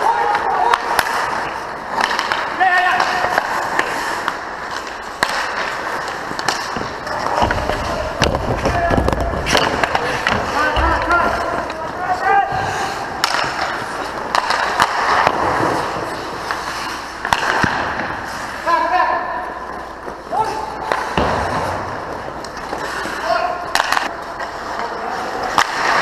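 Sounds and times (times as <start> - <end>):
hockey sticks and puck clacking: 0.0 - 26.0
skate blades scraping on ice: 0.0 - 26.0.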